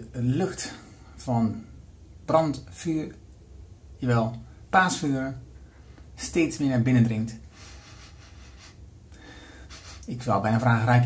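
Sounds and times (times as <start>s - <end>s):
low steady hum: 0.0s - 11.0s
soft breath in: 7.5s - 10.0s.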